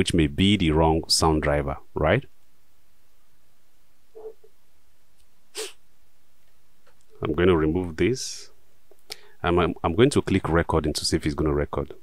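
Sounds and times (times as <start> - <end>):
faint steady hiss: 0.0 - 12.0
sniff through the nose: 5.5 - 5.8.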